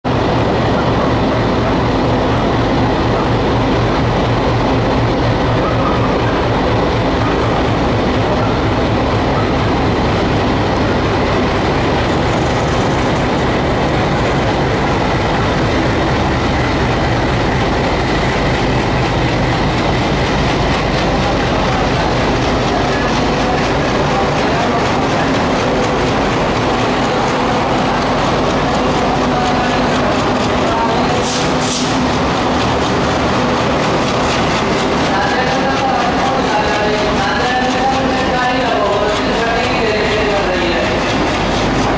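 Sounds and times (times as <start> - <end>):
diesel locomotive engine running: 0.1 - 41.9.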